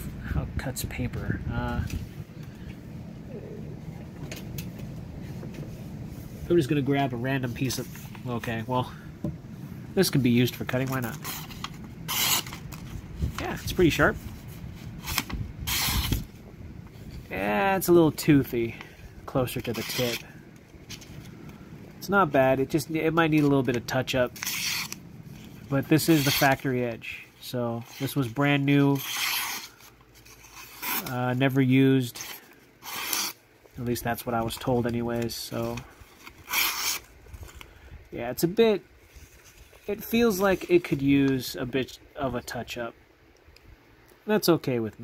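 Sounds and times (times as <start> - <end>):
knife slicing paper: 10.9 - 12.8, 14.9 - 16.3, 19.6 - 20.3, 24.3 - 25.0, 25.7 - 26.6, 27.8 - 31.3, 32.0 - 33.4, 35.6 - 37.1.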